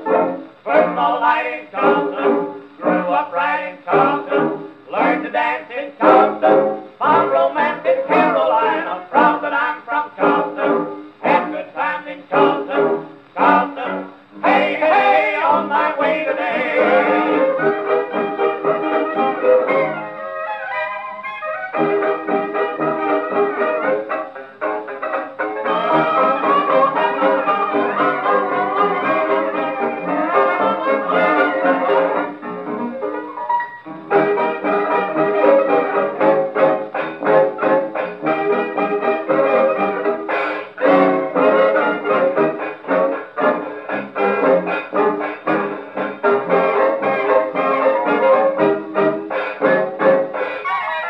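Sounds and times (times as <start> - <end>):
jazz band on old record: 0.0 - 51.0.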